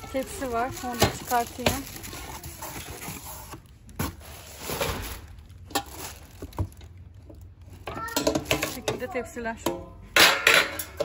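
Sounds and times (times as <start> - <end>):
plastic wrapping rustling: 0.0 - 9.3.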